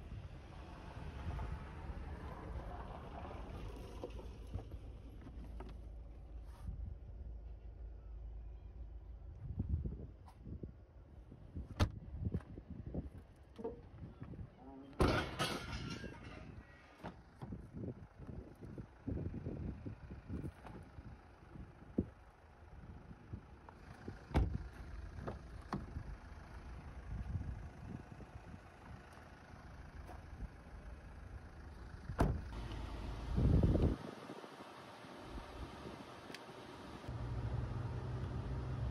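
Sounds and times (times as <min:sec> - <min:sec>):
low handling rumble: 0:00.0 - 0:14.6, 0:15.2 - 0:34.3.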